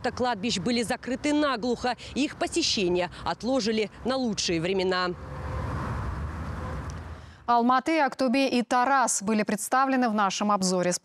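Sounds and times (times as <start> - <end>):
low rumble of road traffic: 0.0 - 9.4.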